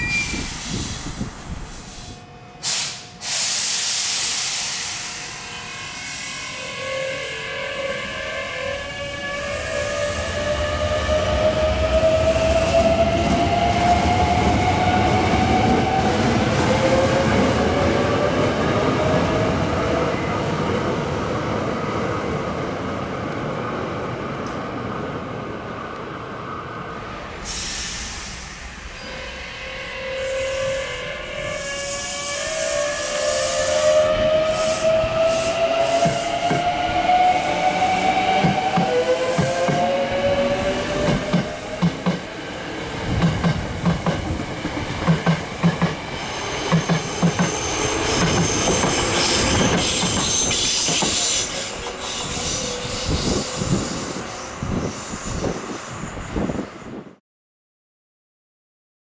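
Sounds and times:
electric train inverter whine: 0.0s - 19.2s
train wheels clattering over rail joints: 46.7s - 52.2s.

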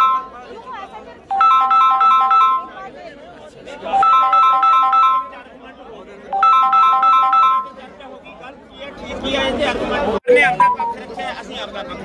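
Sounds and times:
phone ringtone beeping melody: 0.0s - 0.6s, 1.3s - 2.9s, 3.9s - 5.5s, 6.3s - 7.8s, 10.2s - 11.2s.

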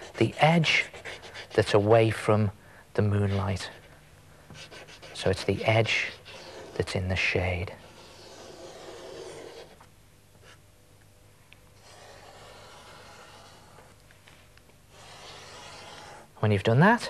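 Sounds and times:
drawing stick scratching on paper: 0.0s - 2.2s, 4.6s - 10.6s, 11.8s - 14.0s, 14.9s - 16.3s.

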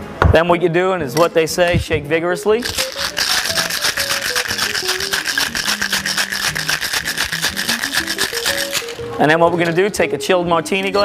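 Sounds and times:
background music: 0.0s - 11.0s
cocktail shaker rattling: 2.6s - 10.0s.

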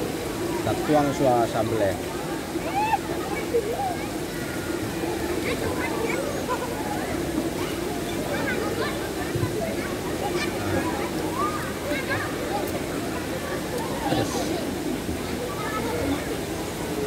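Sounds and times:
people talking and calling: 0.0s - 17.0s
water rushing: 0.0s - 17.0s.

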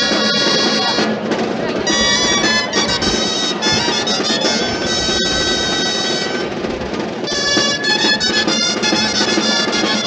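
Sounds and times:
wind instrument long note: 0.0s - 1.2s, 1.8s - 10.0s.

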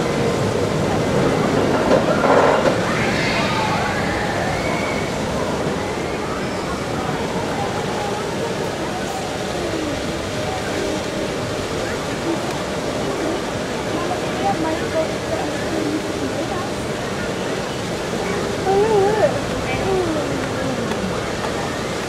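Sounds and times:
indistinct chatter of visitors: 0.0s - 22.0s
steady rushing hiss: 0.0s - 22.0s.

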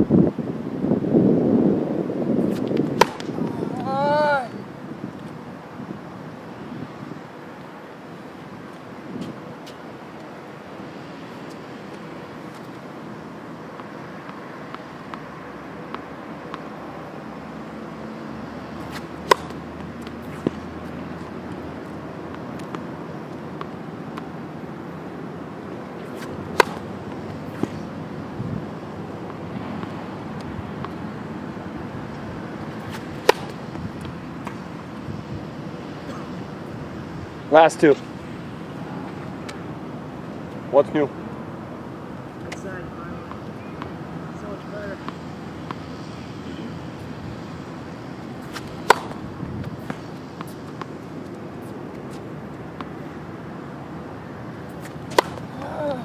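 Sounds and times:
steady outdoor hiss: 0.0s - 56.0s
tennis racket striking ball: 2.5s - 3.8s, 18.8s - 22.8s, 26.0s - 28.0s, 32.7s - 34.6s, 48.4s - 51.3s, 54.7s - 55.9s.

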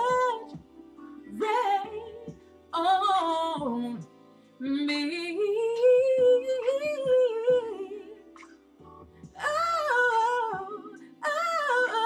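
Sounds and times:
woman singing wordless vocal run: 1.3s - 8.2s, 9.4s - 12.0s.

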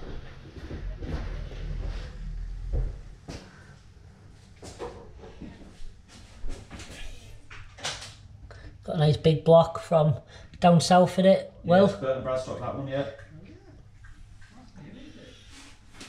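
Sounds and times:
low rumble: 0.0s - 3.7s.

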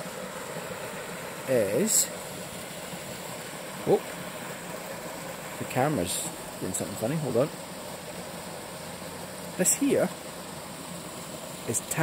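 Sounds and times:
waterfall pouring into a pool: 0.0s - 12.0s.

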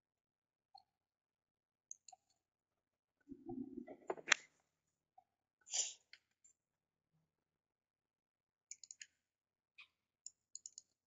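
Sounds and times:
faint computer mouse clicks: 8.7s - 9.2s, 10.2s - 11.0s.

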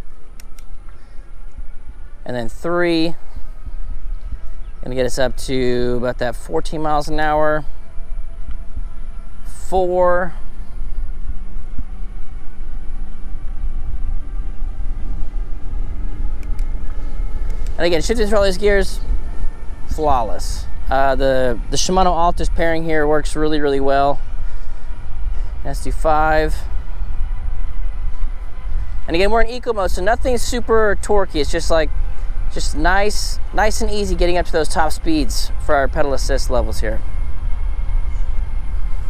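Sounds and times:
bike gear clicks: 0.0s - 1.7s, 16.3s - 17.8s
faint steady hum: 0.0s - 39.0s
wind buffeting microphone: 0.0s - 39.0s.

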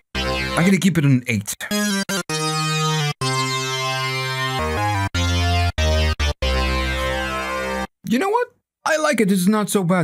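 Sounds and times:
synthesizer lead notes: 0.0s - 0.9s, 1.6s - 7.9s.

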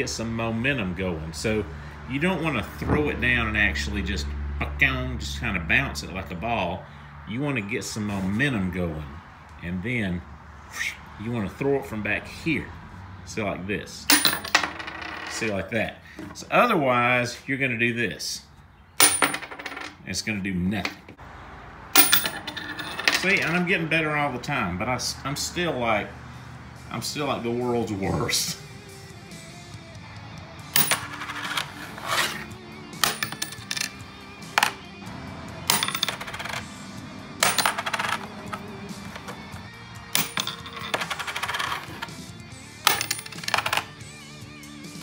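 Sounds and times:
coin landing on wood: 14.1s - 15.5s, 19.0s - 20.0s, 22.0s - 23.6s, 30.7s - 32.4s, 33.0s - 34.0s, 34.6s - 34.8s, 35.7s - 36.6s, 37.4s - 39.4s, 40.1s - 42.1s, 42.8s - 43.9s
coin clattering on wooden board: 14.1s - 15.6s, 19.0s - 20.0s, 22.0s - 23.6s, 30.7s - 32.4s, 33.0s - 34.0s, 34.6s - 34.8s, 35.7s - 36.6s, 37.4s - 39.4s, 40.1s - 42.2s, 42.8s - 44.0s
background music: 22.0s - 45.0s.

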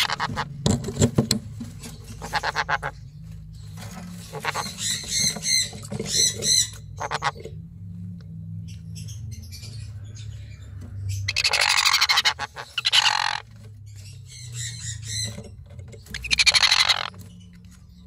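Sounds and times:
parrots squawking: 0.0s - 0.6s, 2.0s - 3.2s, 4.1s - 7.6s, 8.9s - 17.4s.

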